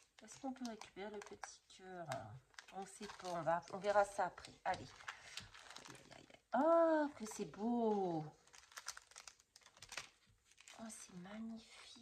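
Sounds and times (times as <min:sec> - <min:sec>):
plastic sleeves crinkling: 0:00.0 - 0:12.0.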